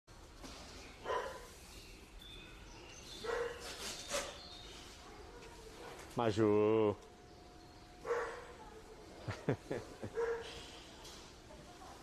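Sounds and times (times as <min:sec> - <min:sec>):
dog barking: 0:01.0 - 0:01.5, 0:03.2 - 0:03.7, 0:08.0 - 0:08.5, 0:10.1 - 0:10.6.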